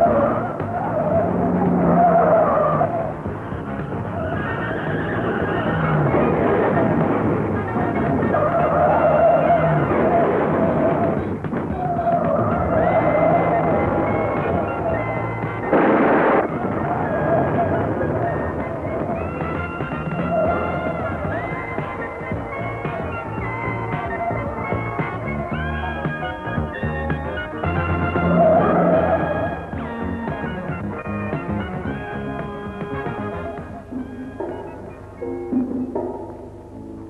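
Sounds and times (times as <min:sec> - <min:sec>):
action film music: 0:00.0 - 0:37.0
car engines: 0:00.0 - 0:37.0
tyres skidding: 0:00.0 - 0:37.0
car crash: 0:15.5 - 0:19.7.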